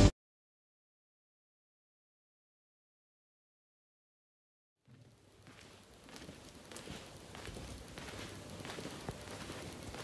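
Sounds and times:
crackles: 0:04.9 - 0:10.0
hissing ambience: 0:04.9 - 0:10.0.

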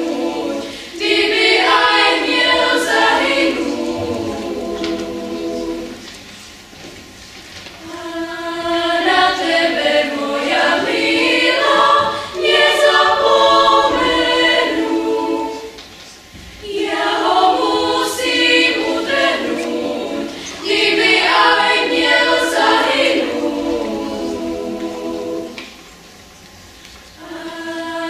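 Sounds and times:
children's choir singing: 0:00.0 - 0:06.9, 0:07.8 - 0:26.3, 0:27.1 - 0:28.0.

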